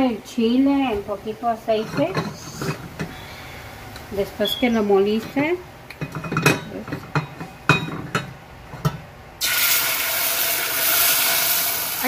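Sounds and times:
sauce sizzling in hot oil: 0:09.4 - 0:12.0.

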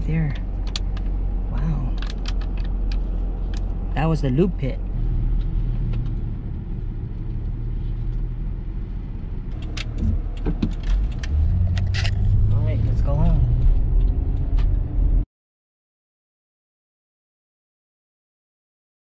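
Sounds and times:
sharp clicks and rattles: 0:00.0 - 0:04.1, 0:04.7 - 0:15.2
car engine and road noise: 0:00.0 - 0:15.3.

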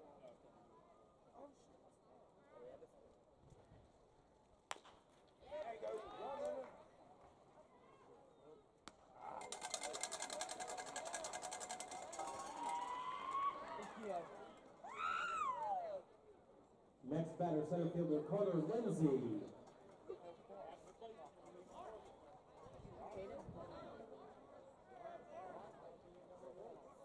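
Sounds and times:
baseball popping into mitt: 0:04.7 - 0:05.0
shouting voices: 0:12.3 - 0:14.0.

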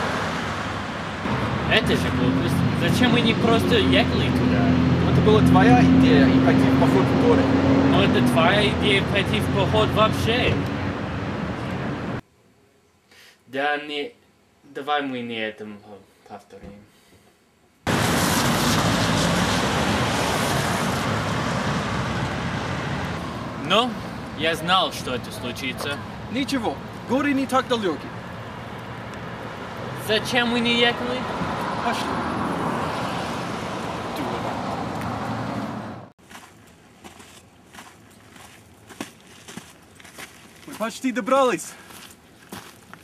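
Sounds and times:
street traffic noise: 0:00.0 - 0:12.2, 0:17.9 - 0:43.0
vehicles passing by: 0:00.0 - 0:12.2, 0:17.9 - 0:36.2
footsteps on dirt trail: 0:36.2 - 0:43.0.

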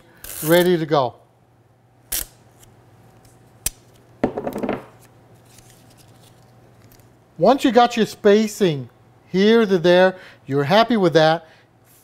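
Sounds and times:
tape strip tearing: 0:00.2 - 0:00.8, 0:02.1 - 0:04.0.

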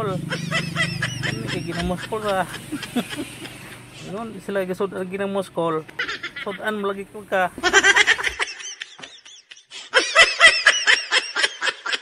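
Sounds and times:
high-pitched laughter: 0:00.1 - 0:03.8, 0:05.9 - 0:06.6, 0:07.6 - 0:12.0.

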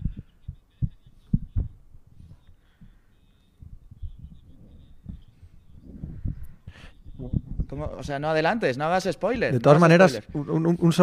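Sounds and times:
dull low thumps: 0:00.0 - 0:03.0, 0:03.6 - 0:08.2.

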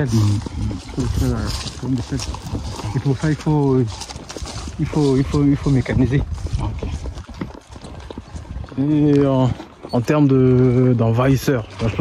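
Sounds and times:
man speaking: 0:00.0 - 0:03.9, 0:04.8 - 0:06.9, 0:08.8 - 0:12.0.

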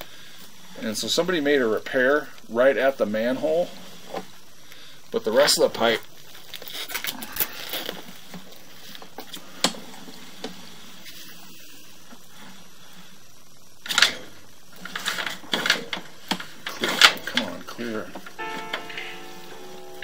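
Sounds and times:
cable handling clicks and rustles: 0:13.8 - 0:18.4.

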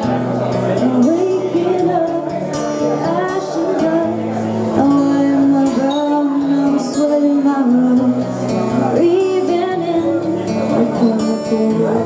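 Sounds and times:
acoustic guitar: 0:00.0 - 0:12.0
woman singing into a microphone: 0:00.0 - 0:12.0.

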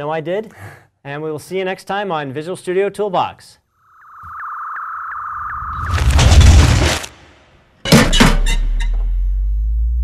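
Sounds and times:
high sine-like tone: 0:03.8 - 0:06.0.

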